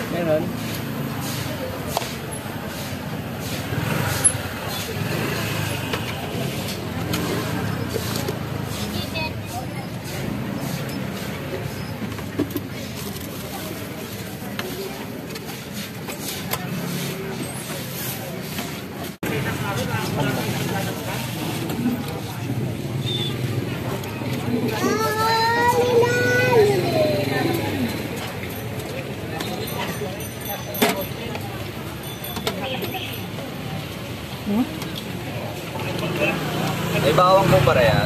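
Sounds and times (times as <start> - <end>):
indistinct voices: 0.0 - 38.0
passing traffic rumble: 0.0 - 38.0.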